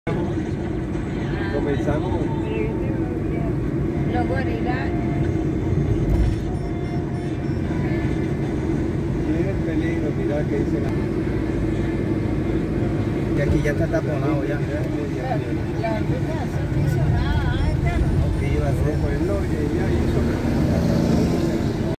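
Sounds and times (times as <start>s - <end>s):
car engine and tyre rumble: 0.0s - 22.0s.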